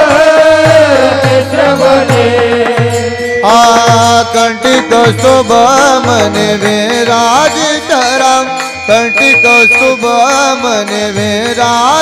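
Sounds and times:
hand cymbals beat: 0:00.0 - 0:12.0
people singing: 0:00.0 - 0:12.0
sustained drone: 0:08.2 - 0:11.0
low pulse: 0:08.6 - 0:10.7.

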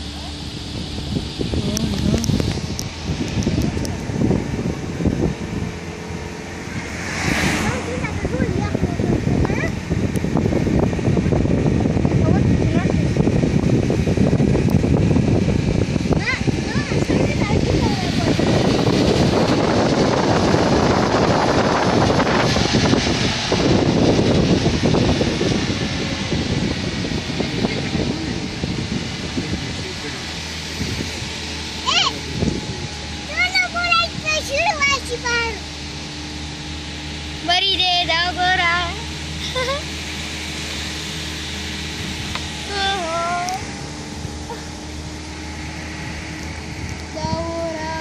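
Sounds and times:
car wind and road noise: 0:00.0 - 0:48.0.

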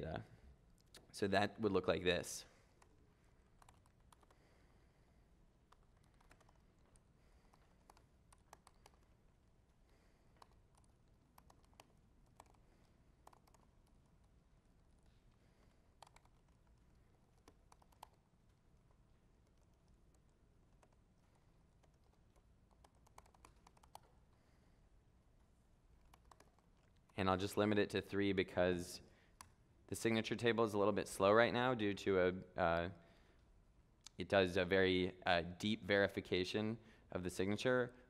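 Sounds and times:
typing on computer keyboard: 0:03.6 - 0:04.4, 0:05.7 - 0:09.1, 0:10.3 - 0:14.4, 0:15.0 - 0:24.3, 0:26.0 - 0:27.2.

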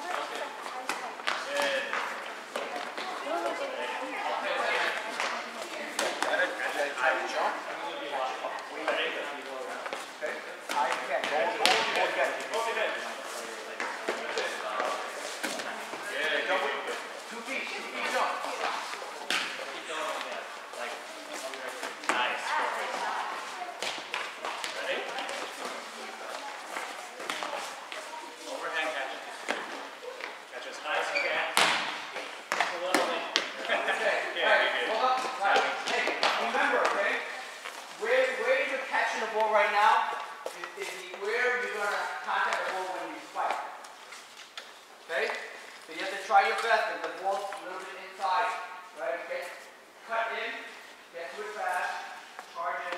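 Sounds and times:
players chattering and calling: 0:00.0 - 0:52.9
volleyballs hit and bouncing: 0:04.8 - 0:06.5, 0:09.8 - 0:12.7, 0:18.2 - 0:20.4, 0:31.4 - 0:33.8, 0:35.0 - 0:37.3.

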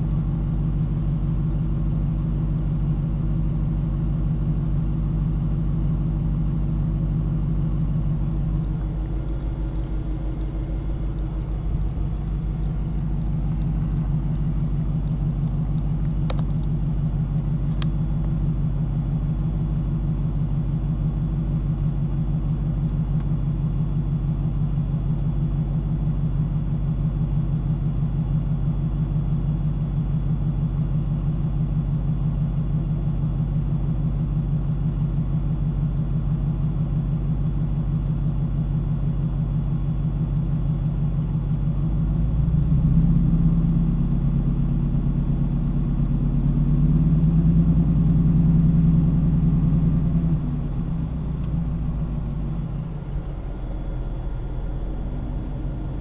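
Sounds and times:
truck engine idling: 0:00.0 - 0:56.0.

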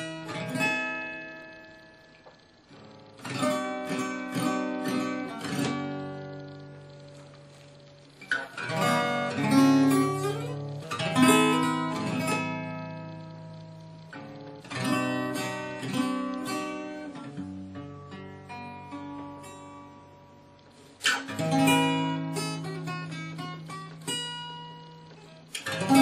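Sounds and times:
acoustic guitar playing chords: 0:00.0 - 0:26.0.

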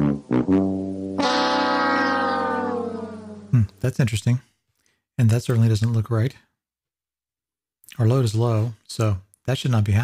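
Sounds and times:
man humming: 0:01.2 - 0:03.8.

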